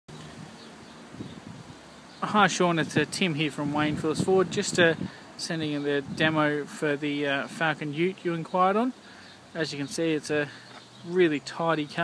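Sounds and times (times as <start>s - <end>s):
faint outdoor background noise: 0.1s - 12.0s.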